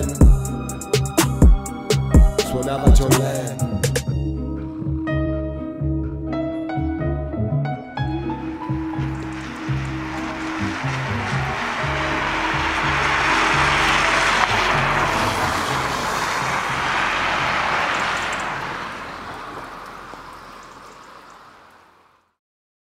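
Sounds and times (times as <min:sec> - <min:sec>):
low string and bass music: 0:00.0 - 0:19.0
car tyres on wet street: 0:08.0 - 0:22.4.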